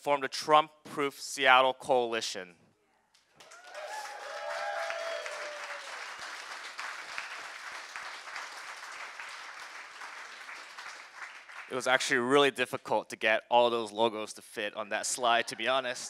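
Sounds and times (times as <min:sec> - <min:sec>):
audience cheering: 0:03.4 - 0:10.8
audience applauding: 0:03.4 - 0:12.0.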